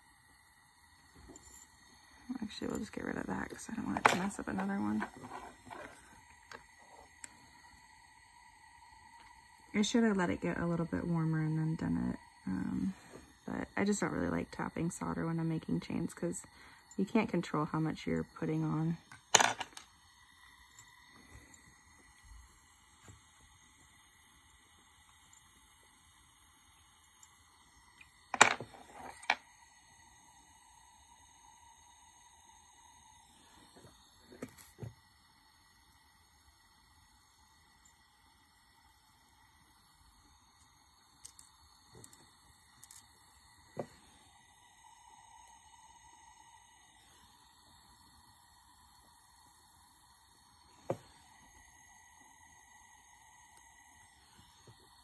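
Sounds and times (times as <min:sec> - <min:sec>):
soldering torch burning: 0:00.0 - 0:55.0.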